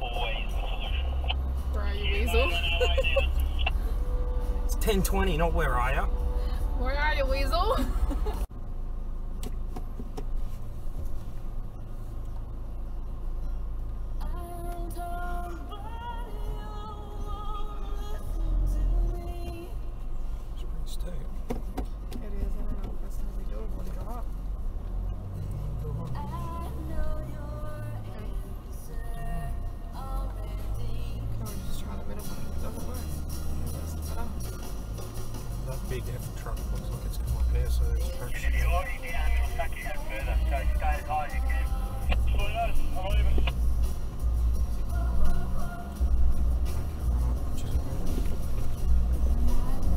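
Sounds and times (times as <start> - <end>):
music playing: 0.0 - 8.5, 30.6 - 49.9
car cabin engine rumble: 0.0 - 49.9.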